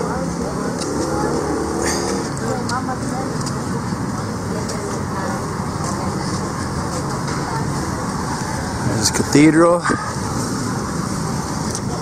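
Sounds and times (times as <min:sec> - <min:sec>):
vehicles passing on road: 0:00.0 - 0:12.0.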